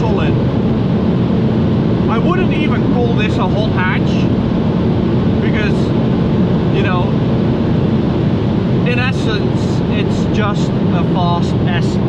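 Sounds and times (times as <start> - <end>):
car engine rumble: 0.0 - 12.0
wind noise in car cabin: 0.0 - 12.0.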